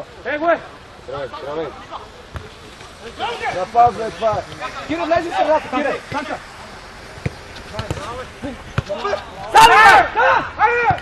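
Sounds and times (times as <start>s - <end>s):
foot kicking football: 2.3s - 5.2s, 7.2s - 9.5s.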